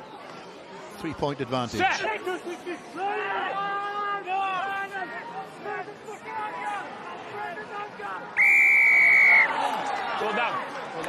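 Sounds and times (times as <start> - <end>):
referee's whistle blast: 8.4 - 9.5.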